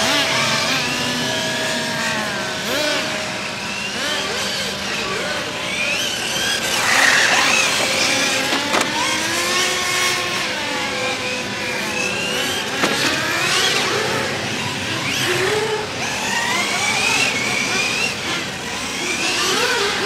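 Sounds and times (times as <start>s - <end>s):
electric motor whining: 0.0s - 20.0s.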